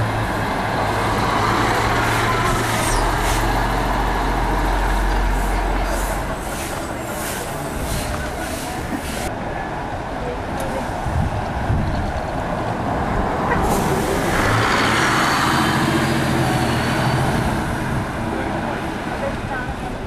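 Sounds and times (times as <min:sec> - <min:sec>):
bus engine passing: 0:00.0 - 0:20.0
street traffic noise: 0:00.0 - 0:20.0.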